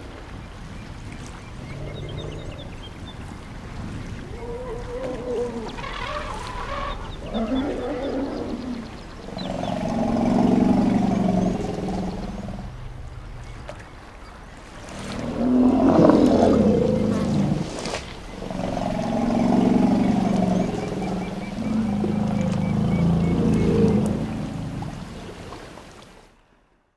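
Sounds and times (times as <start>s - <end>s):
elephants rumbling calls: 4.2s - 12.9s, 14.8s - 25.6s.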